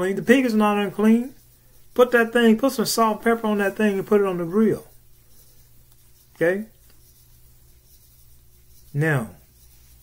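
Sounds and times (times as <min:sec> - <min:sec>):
man talking: 0:00.0 - 0:01.4, 0:02.0 - 0:04.9, 0:06.4 - 0:06.8, 0:08.9 - 0:09.4
low steady hum: 0:00.0 - 0:10.0.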